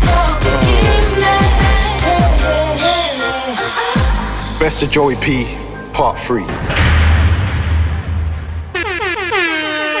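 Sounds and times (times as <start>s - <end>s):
heavy bass beat: 0.0s - 2.6s
air horn blasts: 8.7s - 10.0s.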